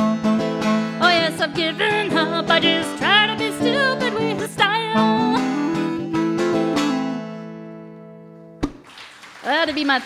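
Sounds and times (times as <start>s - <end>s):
strummed string chord ringing: 0.0s - 8.6s
person singing: 0.8s - 6.3s.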